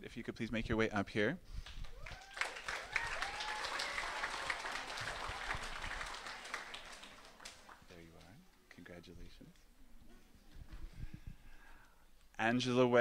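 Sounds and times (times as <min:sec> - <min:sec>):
audience applauding: 0:01.6 - 0:08.4.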